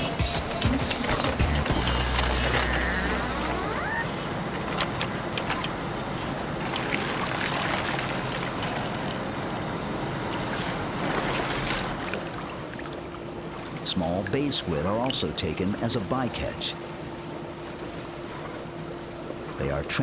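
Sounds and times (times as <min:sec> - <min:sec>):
background music: 0:00.0 - 0:04.0
boat engine running: 0:00.0 - 0:20.0
water washing around boat: 0:00.0 - 0:20.0.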